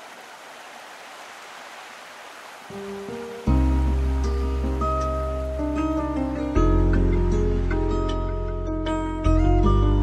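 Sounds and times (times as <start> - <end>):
running water rushing: 0.0 - 8.6.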